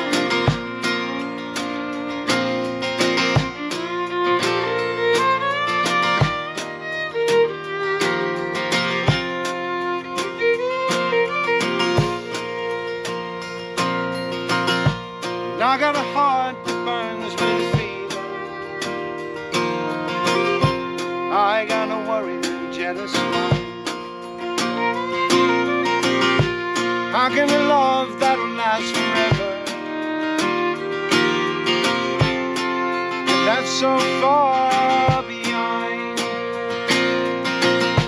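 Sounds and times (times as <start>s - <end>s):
drum kit steady beat: 0.0s - 38.0s
fiddle melody: 0.0s - 38.0s
strummed acoustic guitar: 0.0s - 38.0s.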